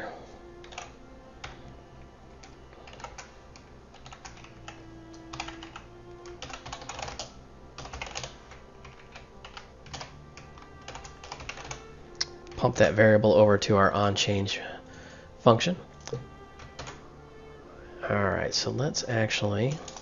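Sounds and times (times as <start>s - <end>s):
typing on computer keyboard: 0.6s - 1.6s, 2.4s - 11.9s, 16.6s - 17.0s, 19.7s - 20.0s.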